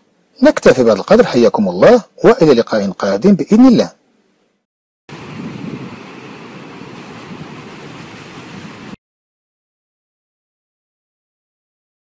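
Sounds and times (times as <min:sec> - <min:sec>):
steady rushing noise: 0:05.1 - 0:09.0.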